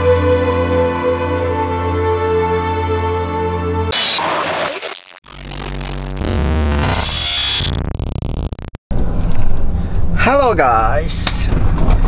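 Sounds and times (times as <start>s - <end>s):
synth logo sting with glitchy stutters: 4.0s - 8.8s.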